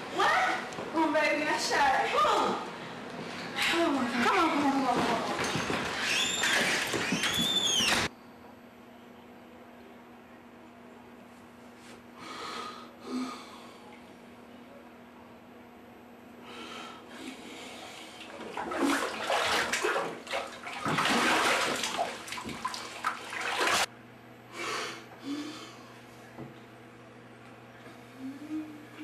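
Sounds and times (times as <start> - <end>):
door hinges squealing: 5.3 - 8.1.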